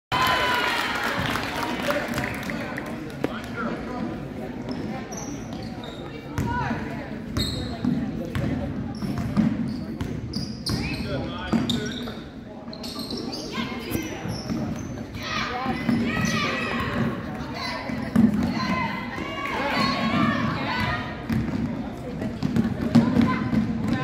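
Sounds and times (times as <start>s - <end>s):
spectators talking and calling out: 0.1s - 24.0s
sneaker squeaks: 4.6s - 6.6s, 7.3s - 17.0s.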